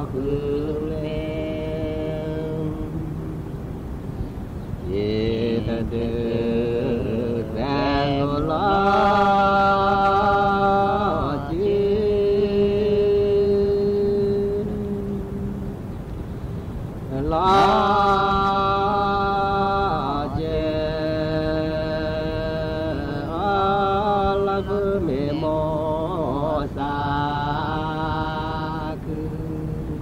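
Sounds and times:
person chant-like singing: 0.0 - 3.6, 4.8 - 15.7, 17.1 - 30.0
low drone: 0.0 - 30.0.

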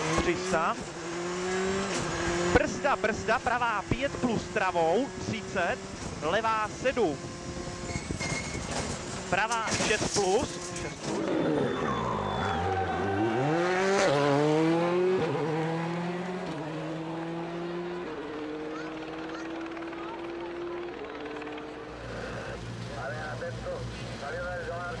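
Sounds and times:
car engine accelerating through gears: 0.0 - 6.2, 10.5 - 22.9
people's voices: 18.6 - 25.0.

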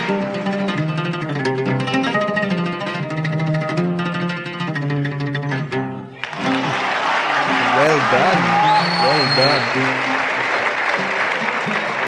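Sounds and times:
audience clapping: 6.2 - 12.0
voices calling out: 6.3 - 10.2.

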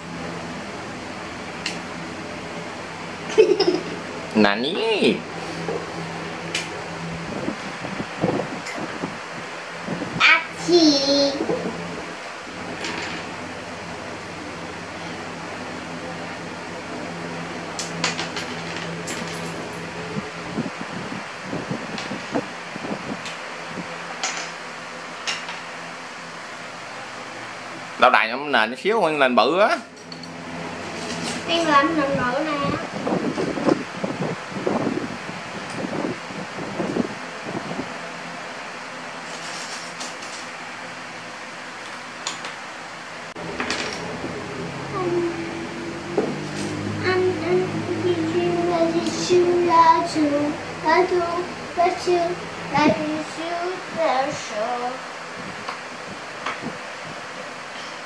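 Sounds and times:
electric fan humming: 0.0 - 58.0.

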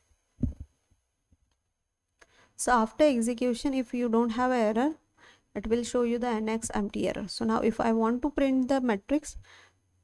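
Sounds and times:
dull click-thump: 0.4 - 0.7.

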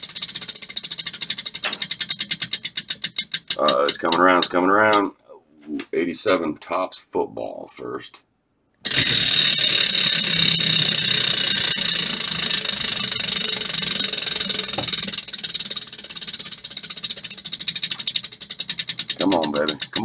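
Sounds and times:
prize wheel pegs clicking: 0.0 - 5.1, 8.8 - 20.0.

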